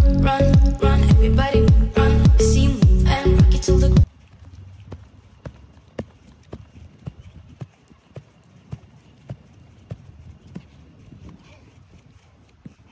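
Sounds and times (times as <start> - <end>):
outdoor background noise: 2.7 - 12.9
footsteps walking: 4.0 - 12.9.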